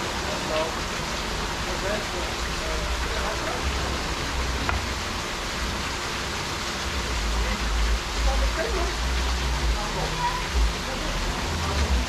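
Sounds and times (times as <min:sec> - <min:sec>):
waterfall splashing into pool: 0:00.0 - 0:12.0.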